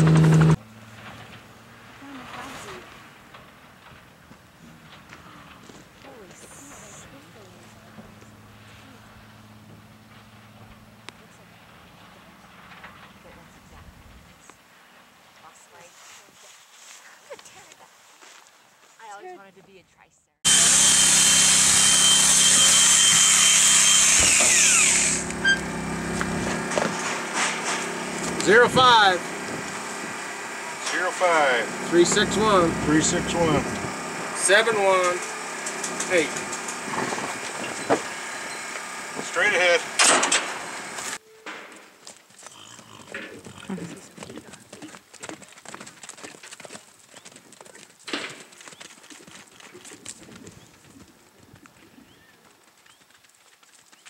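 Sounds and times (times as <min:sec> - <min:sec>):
motor winding down whine: 0:00.0 - 0:00.6, 0:20.5 - 0:41.2
horses galloping on dry ground: 0:01.6 - 0:19.9, 0:25.2 - 0:39.4, 0:41.0 - 0:54.0
small high-pitched motor: 0:20.5 - 0:26.8, 0:28.0 - 0:41.2.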